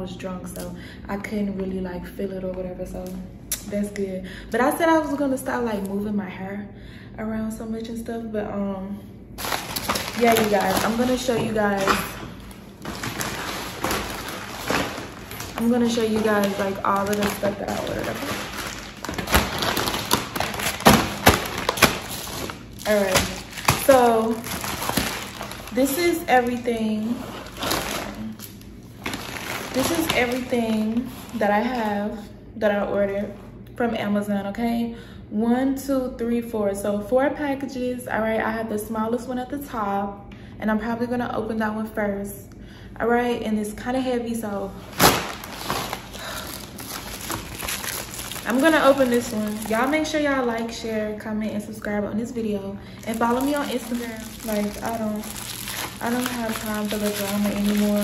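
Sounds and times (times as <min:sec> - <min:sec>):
plastic mailer crinkling: 0:09.4 - 0:31.9, 0:44.8 - 0:50.8, 0:52.9 - 0:58.0.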